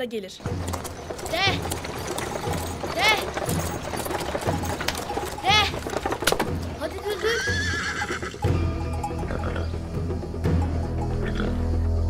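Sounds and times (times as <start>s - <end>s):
horse hooves clopping: 0.3s - 12.0s
wooden cart knocking and rattling: 0.4s - 8.4s.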